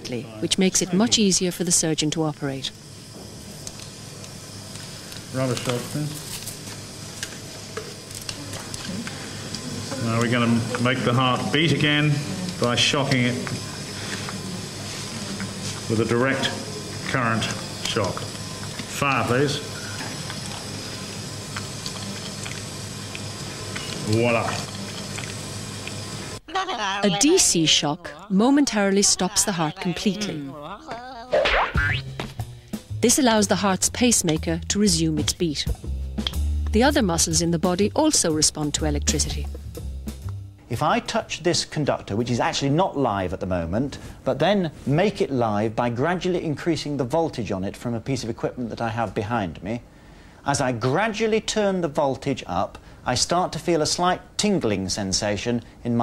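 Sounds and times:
operating theatre background hiss: 0.0 - 31.3, 32.3 - 56.0
cartoon springy boing: 31.3 - 32.1
background music with low bass: 34.4 - 38.0, 38.6 - 40.6.

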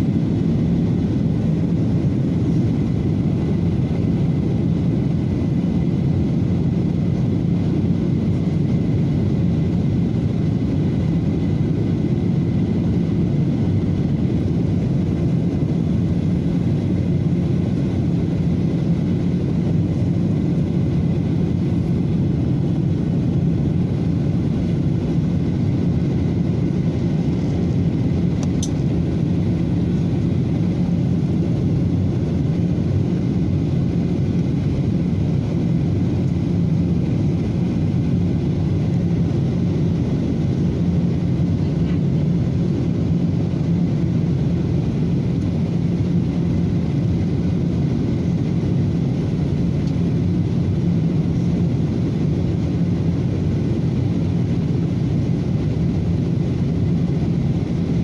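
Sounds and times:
airliner cabin drone: 0.0 - 58.0.

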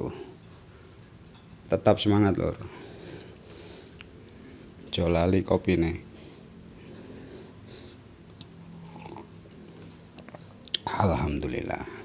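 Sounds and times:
man sipping and swallowing coffee: 8.4 - 10.8
cup sounds: 8.7 - 9.4.

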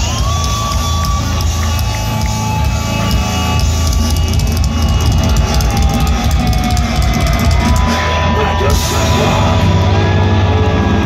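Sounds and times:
heavy metal band playing live: 0.0 - 11.0.

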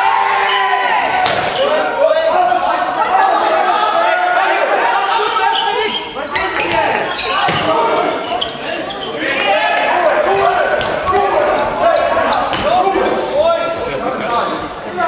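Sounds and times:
players and spectators shouting: 0.0 - 15.0
handball bouncing on court floor: 6.6 - 7.7, 10.8 - 11.2, 12.5 - 12.8.

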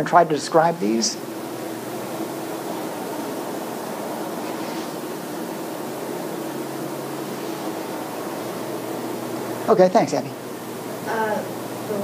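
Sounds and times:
constant hiss: 0.0 - 12.0.

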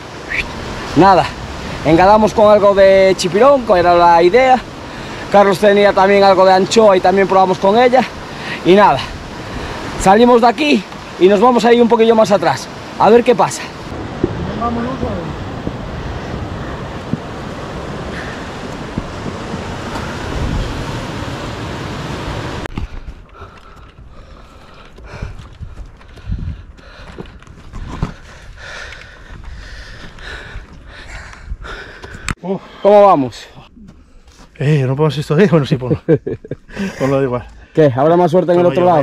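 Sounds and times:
wind on microphone: 13.9 - 32.3.

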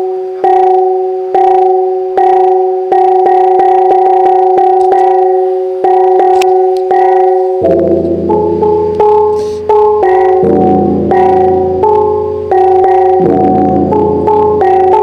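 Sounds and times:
accompaniment with low bass line: 0.0 - 15.0
bronze gongs struck: 0.5 - 15.0.

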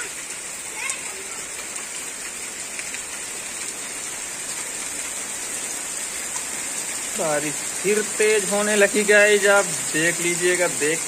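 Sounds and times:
heavy rain on wet ground: 0.0 - 11.0.

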